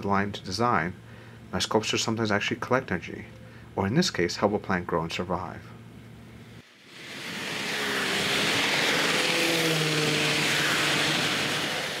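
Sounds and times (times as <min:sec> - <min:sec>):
passing vehicle engine rushing: 0:06.7 - 0:12.0.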